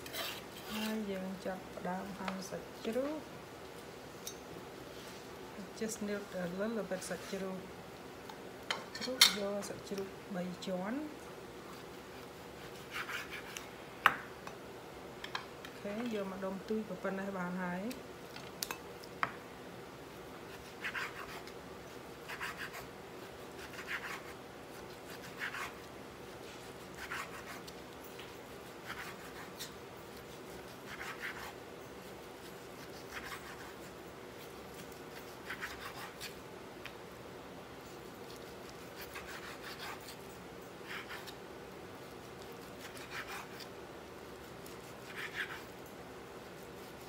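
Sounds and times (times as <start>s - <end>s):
knife slicing meat: 20.5s - 21.5s, 22.2s - 22.9s, 23.6s - 25.9s, 26.6s - 27.8s, 28.6s - 31.6s, 32.4s - 33.9s, 34.5s - 36.4s, 38.2s - 40.2s, 40.8s - 41.4s, 42.2s - 43.7s, 44.4s - 45.7s.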